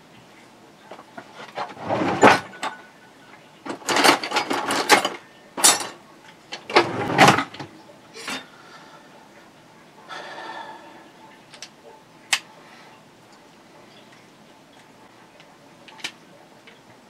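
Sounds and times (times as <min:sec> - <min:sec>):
drawer pulled open: 0:01.4 - 0:02.6, 0:06.7 - 0:07.6
tools clattering together: 0:03.7 - 0:07.7.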